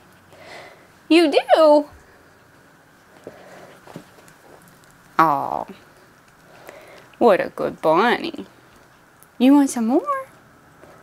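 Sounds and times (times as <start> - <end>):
rabbit chomping clicks: 3.7 - 7.2.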